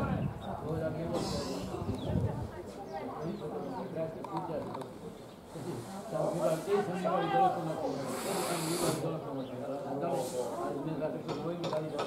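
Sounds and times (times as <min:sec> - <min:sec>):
people talking: 0:00.0 - 0:12.0
short hissing noise: 0:08.0 - 0:09.1.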